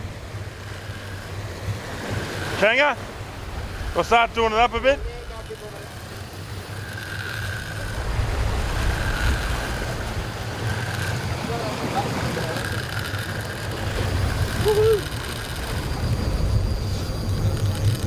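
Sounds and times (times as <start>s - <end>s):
wind on microphone: 0.0s - 12.0s, 12.6s - 18.0s
boat engine rumble: 0.0s - 18.0s
fishing reel drag whining: 0.0s - 18.0s.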